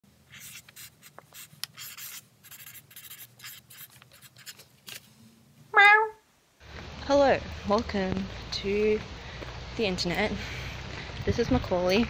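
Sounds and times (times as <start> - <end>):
marker pen scratching on paper: 0.3 - 5.0.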